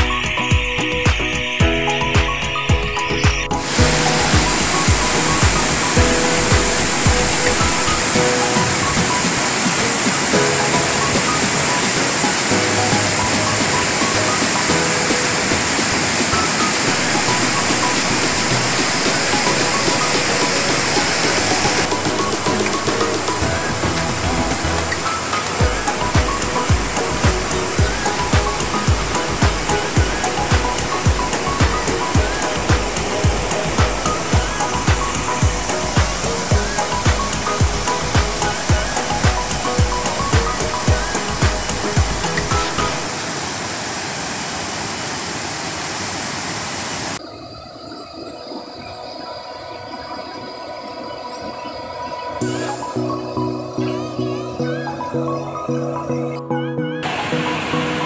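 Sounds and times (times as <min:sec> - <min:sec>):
background music with beat: 0:00.0 - 0:43.2, 0:52.4 - 0:58.0
waterfall rushing: 0:00.0 - 0:47.3, 0:57.0 - 0:58.0.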